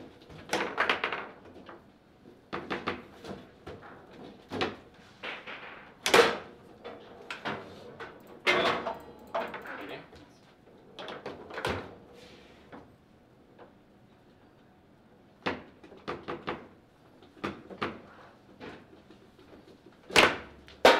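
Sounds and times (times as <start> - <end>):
table football ball and rods clacking: 0.5 - 1.6, 4.6 - 6.4.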